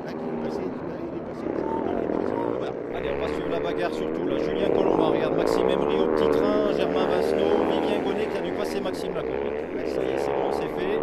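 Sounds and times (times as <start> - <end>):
motocross bike engines revving: 0.0 - 11.0.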